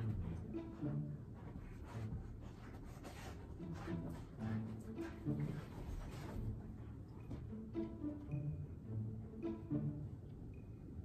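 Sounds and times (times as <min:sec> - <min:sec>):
rustling of clothing and bedding: 0:00.0 - 0:08.2.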